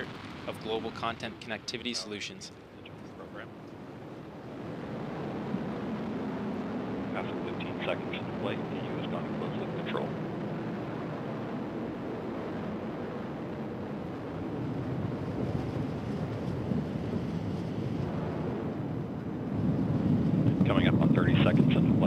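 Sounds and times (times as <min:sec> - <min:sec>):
distant rocket rumble: 0:00.0 - 0:22.0.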